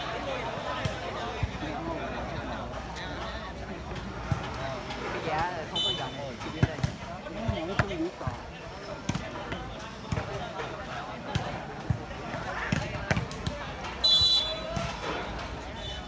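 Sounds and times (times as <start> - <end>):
chatter of players and spectators: 0.0 - 16.0.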